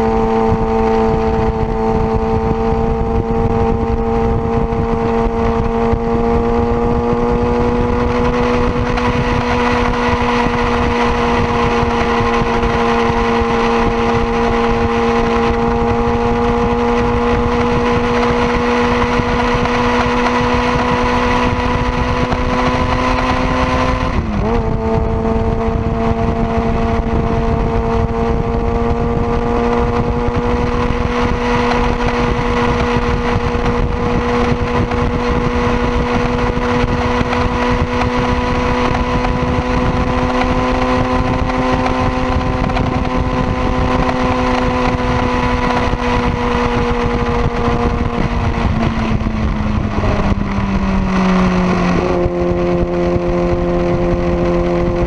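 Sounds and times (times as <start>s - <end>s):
motorcycle engine at high revs: 0.0s - 55.0s
wind rush: 0.0s - 55.0s.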